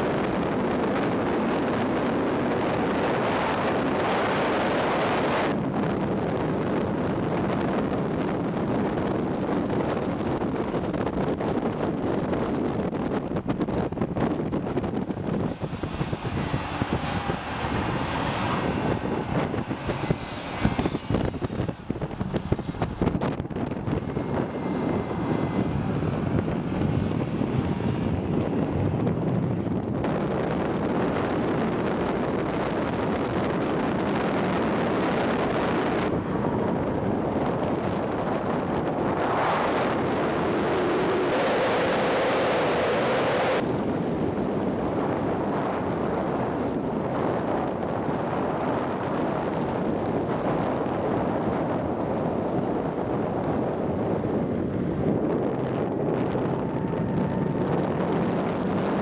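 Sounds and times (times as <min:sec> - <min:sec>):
heavy wind rush: 0:00.0 - 0:59.0
car engine at speed: 0:00.1 - 0:43.7.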